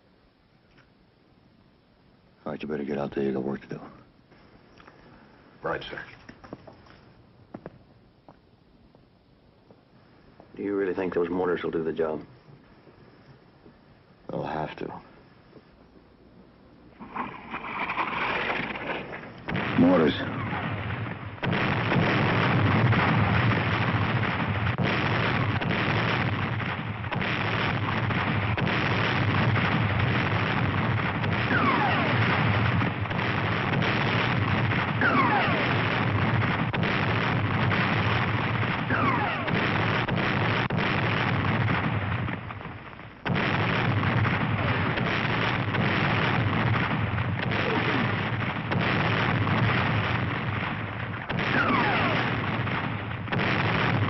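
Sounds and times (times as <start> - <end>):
explosions: 16.9 - 54.0
gunfire: 17.0 - 54.0.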